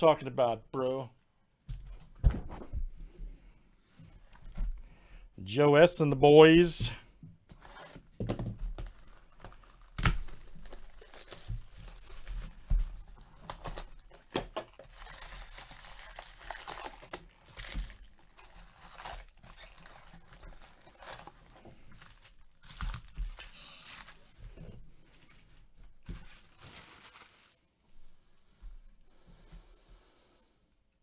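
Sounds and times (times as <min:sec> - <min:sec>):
plastic wrap crinkling and tearing: 0:08.7 - 0:24.4, 0:26.0 - 0:27.6
foil packs rustling: 0:08.8 - 0:24.5, 0:26.0 - 0:27.6.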